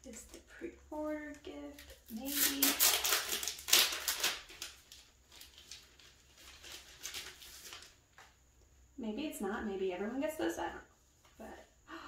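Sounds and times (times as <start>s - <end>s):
paper and card rustling: 1.2s - 8.4s.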